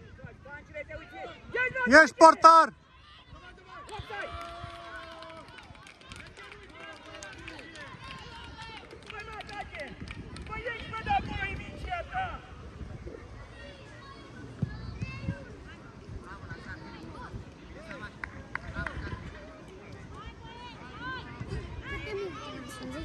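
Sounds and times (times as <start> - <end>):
distant shouts of young footballers: 0.0 - 8.9.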